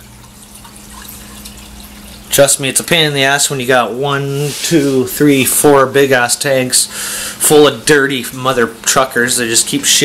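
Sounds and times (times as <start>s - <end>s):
water trickling and splashing: 0.0s - 3.6s
low steady hum: 0.0s - 10.0s.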